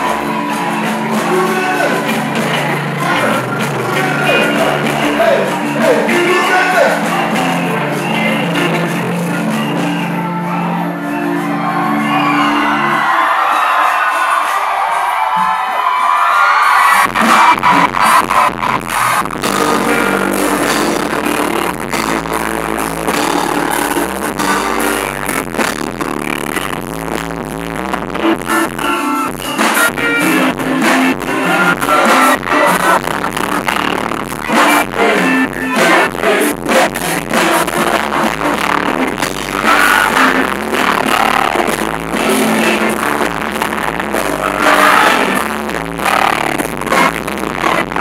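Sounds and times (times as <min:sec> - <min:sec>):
drums and bass beat: 0:00.0 - 0:10.2, 0:16.6 - 0:48.0
live band with singers: 0:00.0 - 0:48.0.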